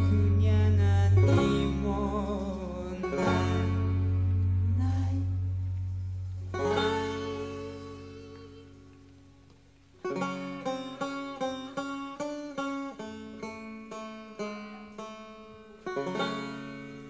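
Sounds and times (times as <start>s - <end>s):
banjo plucked melody: 0.0s - 17.0s.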